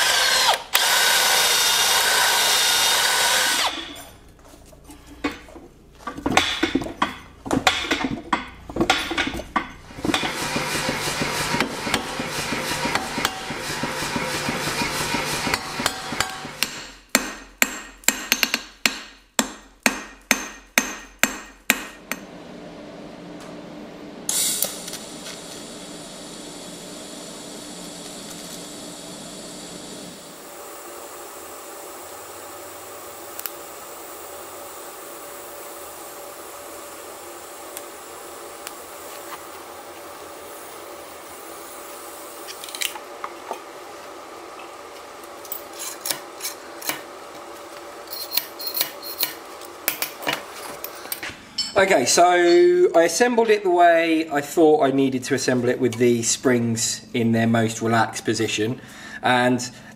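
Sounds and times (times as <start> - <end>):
cordless drill boring into steel: 0.0 - 4.0
hammer blows on anvil: 6.4 - 22.3.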